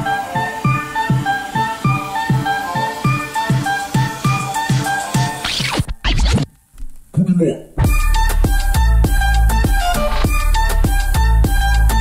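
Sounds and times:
scratch-like effects: 4.7 - 7.0
plucked-string tune over beat: 7.8 - 12.0.

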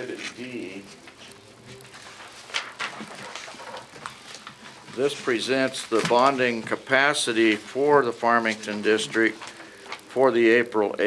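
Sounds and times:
paper pages rustling: 0.0 - 10.7.

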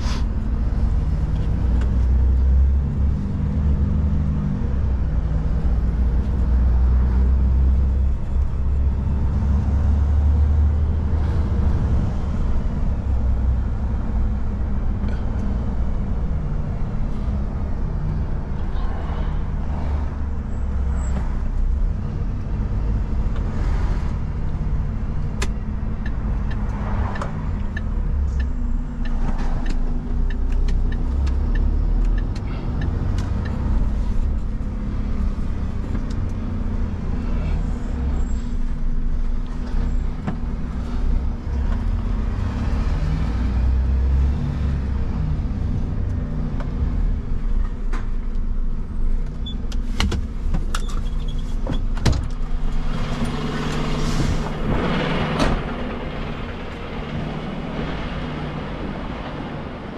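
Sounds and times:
road noise inside cab: 0.0 - 59.9
truck diesel engine: 0.0 - 59.9.

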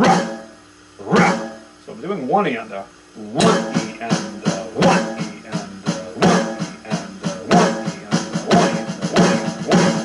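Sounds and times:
electronic drum pad strokes: 0.0 - 1.8, 3.2 - 10.0.

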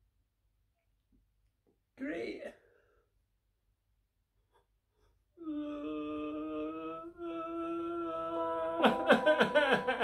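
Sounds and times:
man humming a long note: 5.4 - 10.0
man laughing loudly: 8.8 - 10.0.

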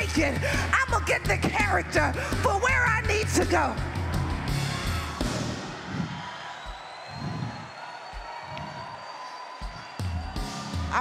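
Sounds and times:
person preaching: 0.0 - 3.8
congregation noise: 4.0 - 10.3.

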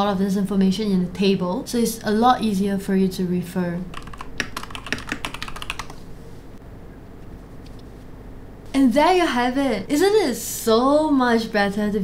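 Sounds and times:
typing on a computer keyboard: 3.9 - 6.0.

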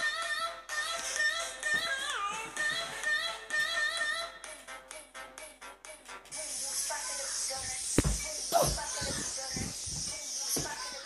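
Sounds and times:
pulsing music beat: 2.8 - 11.0.

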